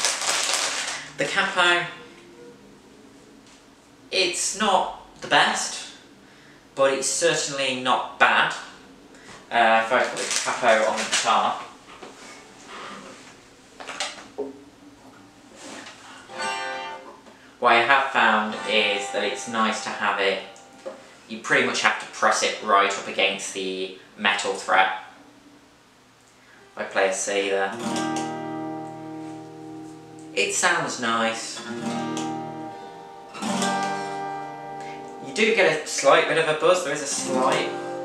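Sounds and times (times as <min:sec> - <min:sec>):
guitar handling rustling: 0:00.0 - 0:01.2, 0:09.3 - 0:14.4, 0:15.5 - 0:17.4, 0:27.8 - 0:30.2, 0:33.4 - 0:36.2, 0:37.1 - 0:38.0
acoustic guitar chord ringing: 0:16.2 - 0:21.3, 0:27.7 - 0:30.6, 0:31.6 - 0:35.9, 0:37.1 - 0:38.0.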